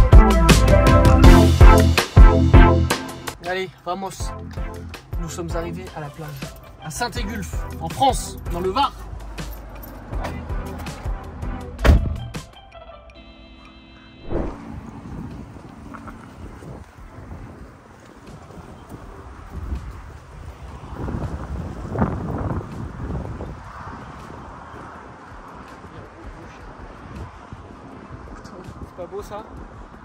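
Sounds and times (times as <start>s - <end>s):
wind buffeting microphone: 14.2s - 30.0s.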